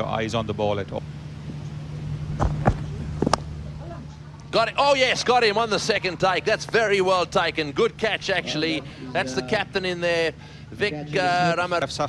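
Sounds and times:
steady low hum: 0:00.0 - 0:12.0
bat striking ball: 0:02.4 - 0:04.3.

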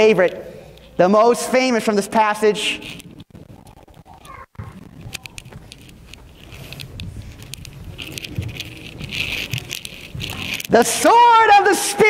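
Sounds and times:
metallic rattling and clicking: 0:02.8 - 0:12.0.

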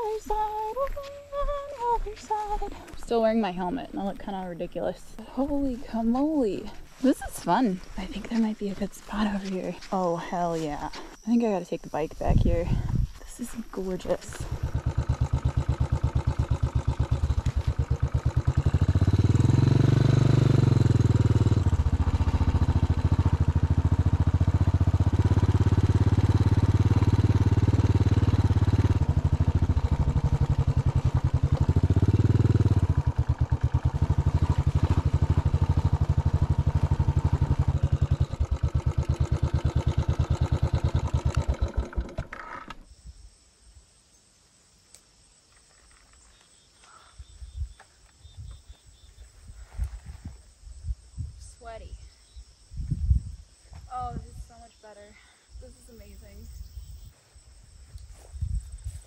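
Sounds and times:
motorcycle engine running: 0:13.8 - 0:42.8.

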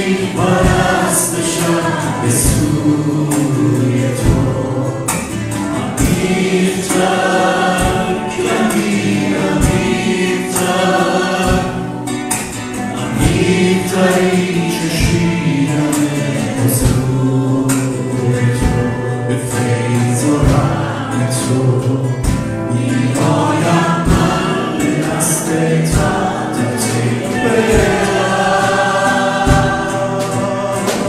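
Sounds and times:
acoustic guitar: 0:00.0 - 0:31.0
low thumps on the beat: 0:00.0 - 0:31.0
people singing together: 0:00.0 - 0:31.0.

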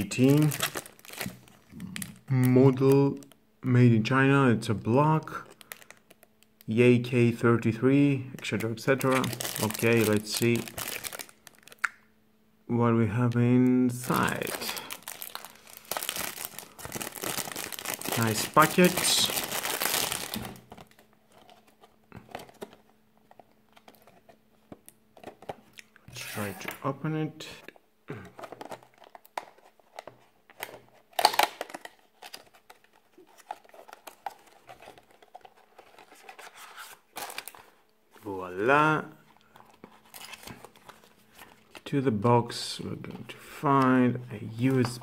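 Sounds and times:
plastic wrapping crinkling: 0:00.0 - 0:03.4, 0:05.5 - 0:06.4, 0:08.9 - 0:12.0, 0:13.9 - 0:24.4, 0:30.6 - 0:37.8, 0:39.3 - 0:41.9.

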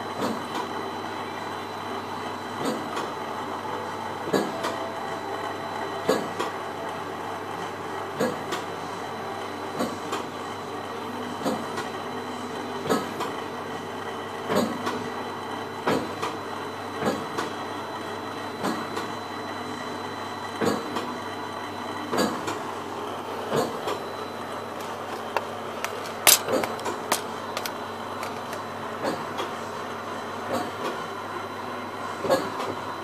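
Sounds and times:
printing press hum: 0:00.0 - 0:33.0.

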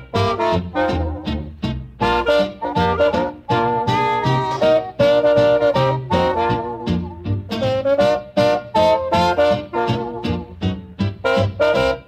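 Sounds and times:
instrumental band music: 0:00.0 - 0:12.0.

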